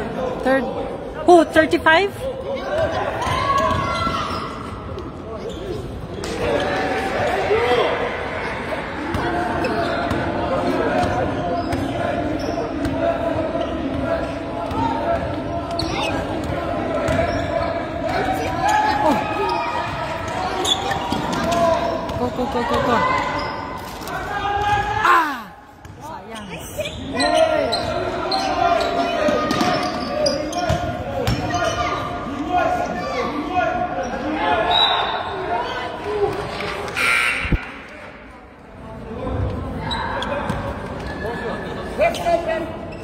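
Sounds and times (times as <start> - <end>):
voices in a large gym: 0.0 - 43.0.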